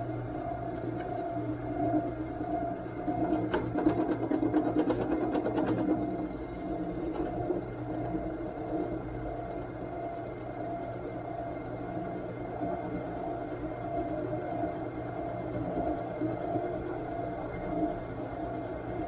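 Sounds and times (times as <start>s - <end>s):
drill press motor running: 0.0s - 19.0s.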